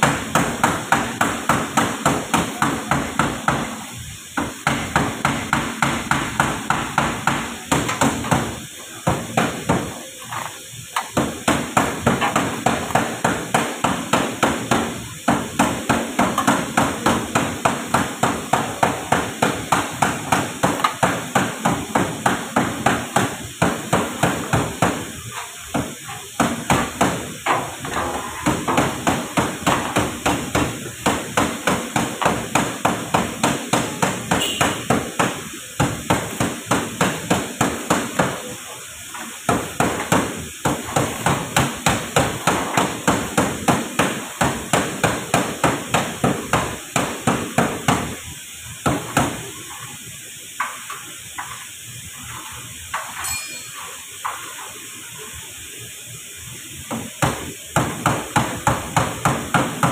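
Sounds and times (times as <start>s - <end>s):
hammer on sheet metal: 0.0s - 48.2s, 48.8s - 49.8s, 56.9s - 59.9s.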